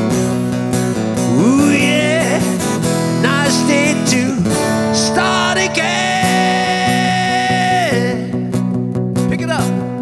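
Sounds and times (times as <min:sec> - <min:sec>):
acoustic guitar lead: 0:00.0 - 0:10.0
held guitar chords: 0:00.0 - 0:10.0.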